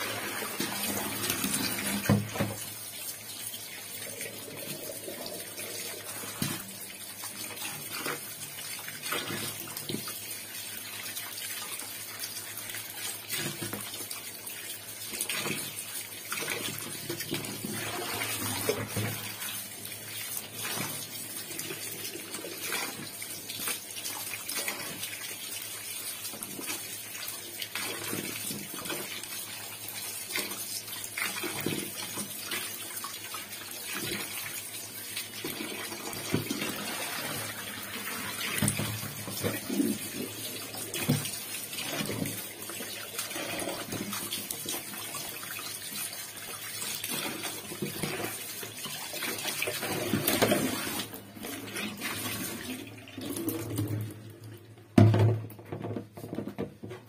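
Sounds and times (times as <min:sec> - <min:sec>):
tap running into water: 0:00.0 - 0:02.9, 0:15.1 - 0:25.1, 0:35.2 - 0:45.6, 0:46.2 - 0:57.0
water splashing and sloshing: 0:00.0 - 0:57.0.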